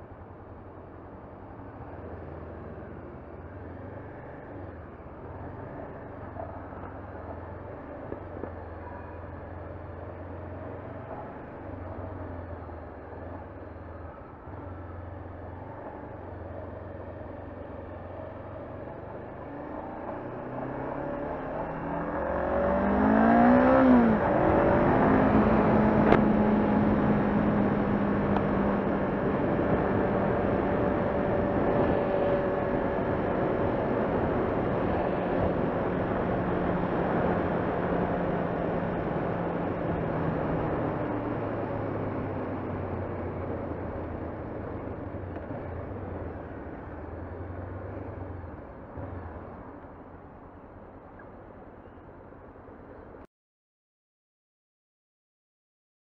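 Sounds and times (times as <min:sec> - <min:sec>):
wind and road rush: 0:00.0 - 0:53.3
motorcycle engine: 0:19.4 - 0:49.6.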